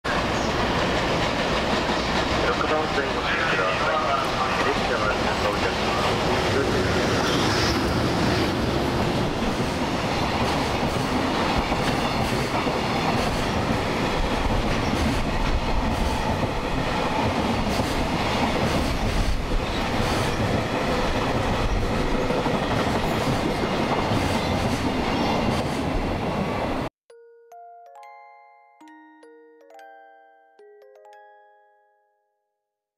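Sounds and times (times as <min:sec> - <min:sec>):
freight train wheels on rails: 0:00.1 - 0:26.9.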